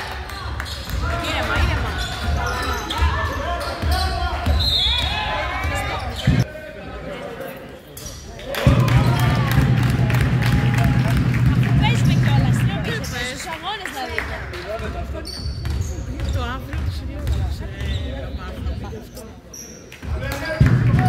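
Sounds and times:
referee's whistle: 3.6 - 5.2
players shouting: 8.4 - 13.0
basketball bouncing on wooden floor: 11.5 - 13.1.

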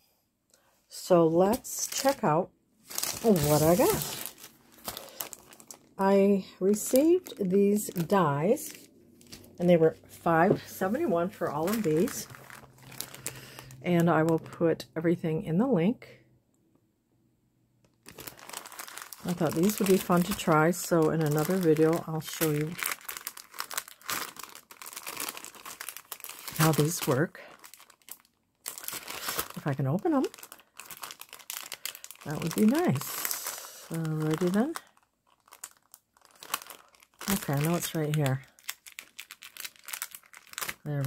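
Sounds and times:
plastic packaging crinkling: 1.4 - 9.6, 10.3 - 14.6, 17.9 - 41.0.

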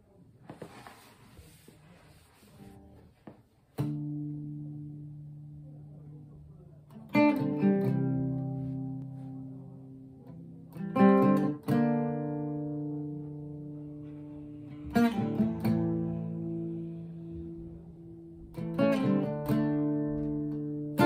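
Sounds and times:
acoustic guitar strummed chords: 3.8 - 6.1, 6.9 - 21.0.

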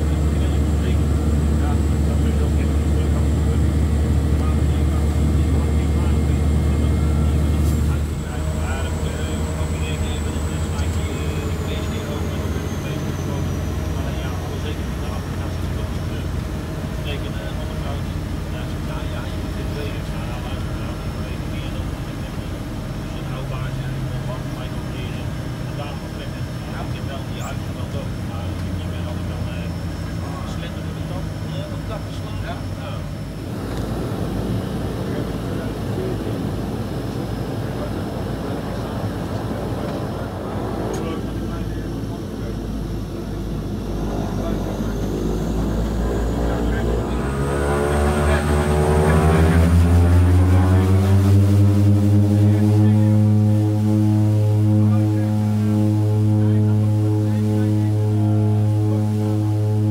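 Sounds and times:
turboprop engines and propellers: 0.0 - 59.9.

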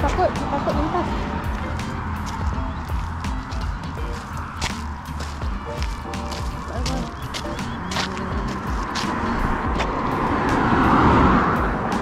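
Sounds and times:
car driving past: 8.1 - 12.0.

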